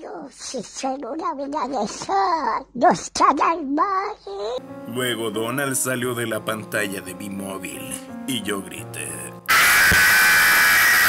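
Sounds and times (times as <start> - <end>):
loud distorted static burst: 9.5 - 11.0.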